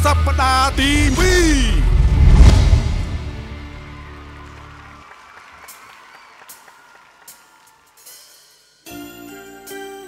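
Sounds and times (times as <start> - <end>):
audience applauding: 3.6 - 8.3.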